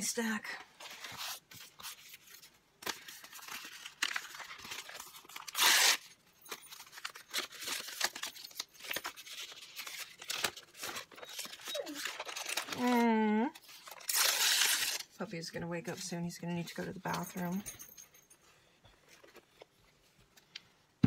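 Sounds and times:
paper rustling: 0:00.7 - 0:15.1, 0:19.0 - 0:20.5
paper ripping: 0:00.8 - 0:06.2, 0:06.8 - 0:15.2.

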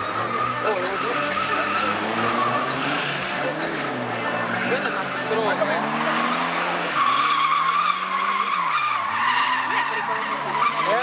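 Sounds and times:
car engine at high revs: 0:00.0 - 0:11.0
tyres squealing: 0:00.1 - 0:11.0.

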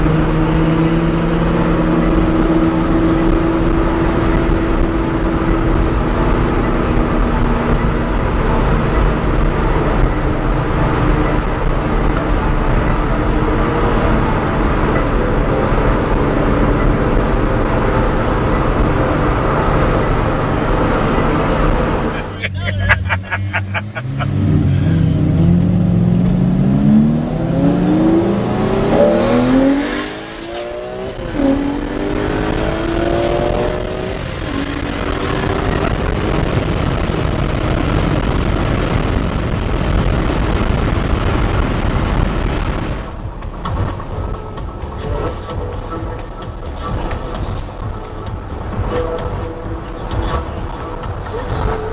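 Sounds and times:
background music: 0:00.0 - 0:36.4, 0:43.0 - 0:51.9
car engine accelerating: 0:00.0 - 0:51.9
road and tyre noise: 0:00.0 - 0:51.9.

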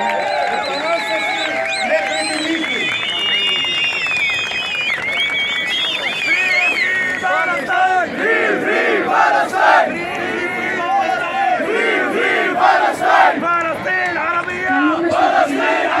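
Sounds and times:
crowd chanting slogans: 0:07.2 - 0:13.8, 0:14.7 - 0:16.0.

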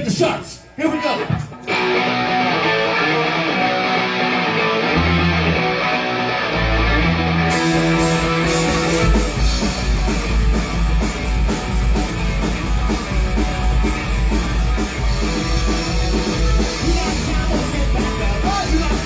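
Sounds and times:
electric guitars ringing: 0:01.2 - 0:19.0
punk rock band playing: 0:01.2 - 0:19.0
drum kit beat: 0:07.4 - 0:19.0.

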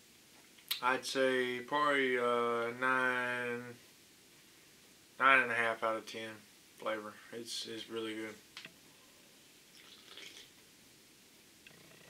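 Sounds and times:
sip from a can: 0:09.7 - 0:10.5.

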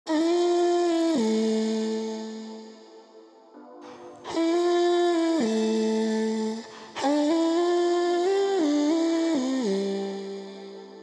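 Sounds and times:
hip-hop melodic lead: 0:00.1 - 0:11.0.

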